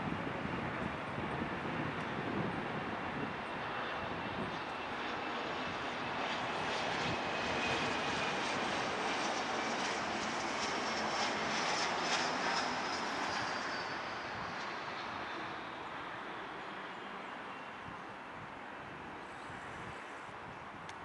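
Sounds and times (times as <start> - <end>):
jet engines rushing and whining: 0.0 - 21.0.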